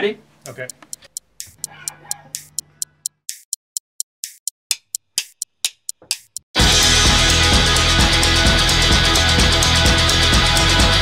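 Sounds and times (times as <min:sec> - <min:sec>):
drumsticks clicking together: 0:00.5 - 0:03.6, 0:04.2 - 0:06.4.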